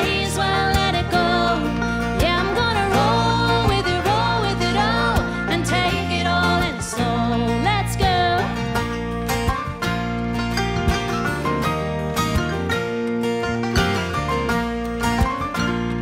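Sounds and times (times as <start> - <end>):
banjo picking: 0.0 - 16.0
country band playing: 0.0 - 16.0.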